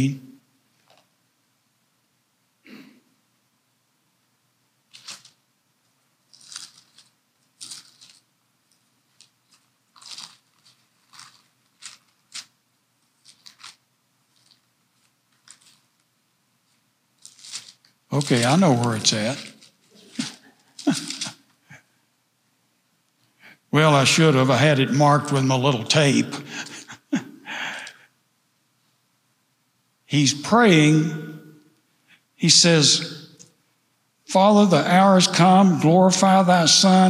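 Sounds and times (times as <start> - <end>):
book pages turning: 4.9 - 5.4, 6.3 - 8.3, 9.1 - 16.1, 16.7 - 21.4
man chuckling softly: 19.9 - 22.0, 26.4 - 28.0.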